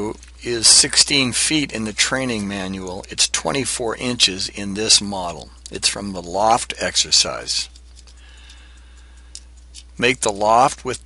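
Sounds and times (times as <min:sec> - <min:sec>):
electrical hum and hiss: 0:00.0 - 0:11.0.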